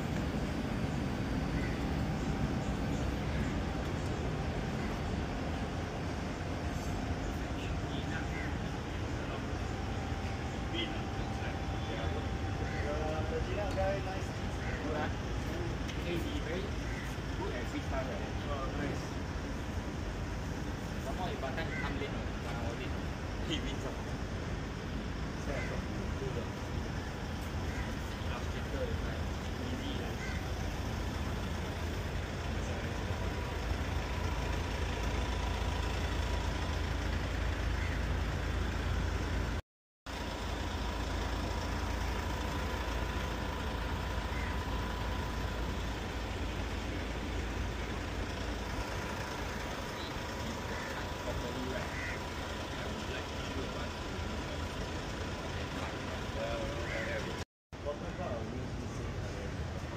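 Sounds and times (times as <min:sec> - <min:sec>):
street rumble with hiss: 0:00.0 - 0:59.9.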